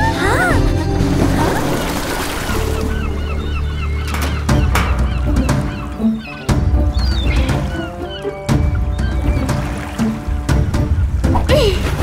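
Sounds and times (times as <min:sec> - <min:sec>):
seagulls crying: 0:00.0 - 0:10.4
background music: 0:00.0 - 0:12.0.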